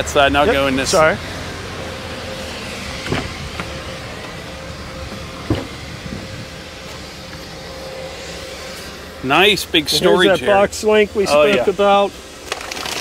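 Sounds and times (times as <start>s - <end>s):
steady background hum: 0.0s - 13.0s
pickup door clicks and knocks: 5.5s - 5.8s.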